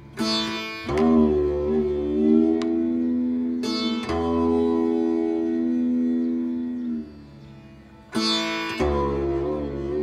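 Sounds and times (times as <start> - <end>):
bass sitar low note ringing: 0.0 - 10.0.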